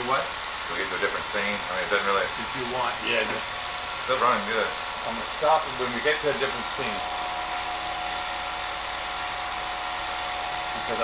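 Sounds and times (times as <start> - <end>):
film projector whirring: 0.0 - 11.0
constant tone: 0.2 - 11.0.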